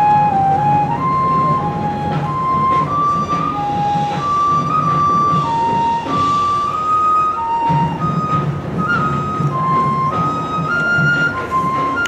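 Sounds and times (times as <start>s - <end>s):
marching band playing slow melody: 0.0s - 12.0s
soft low accompaniment: 0.0s - 12.0s.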